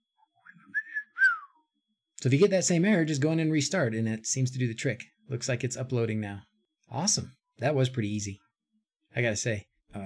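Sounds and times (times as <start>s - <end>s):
person whistling: 0.4s - 1.6s.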